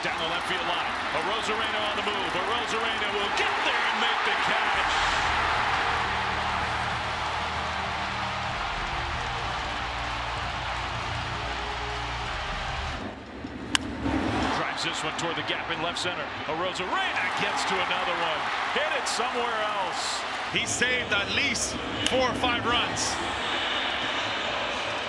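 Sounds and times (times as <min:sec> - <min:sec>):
stadium crowd cheering: 0:00.0 - 0:25.0.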